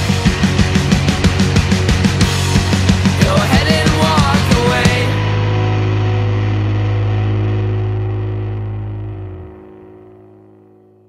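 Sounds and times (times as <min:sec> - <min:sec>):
drum hit: 0:00.0 - 0:05.3
distorted guitar chord ringing: 0:00.0 - 0:11.0.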